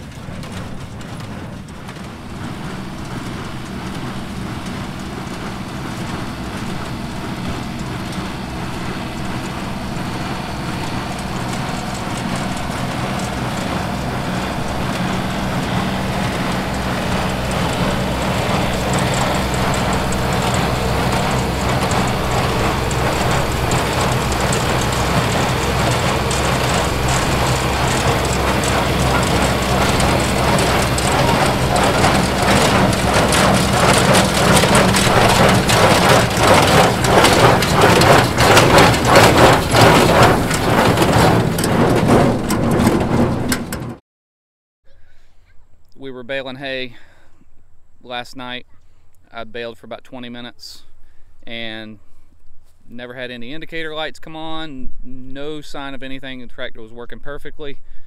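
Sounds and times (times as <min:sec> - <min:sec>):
baler rhythmic clatter: 0:00.0 - 0:44.0
tractor diesel engine running: 0:00.0 - 0:44.0.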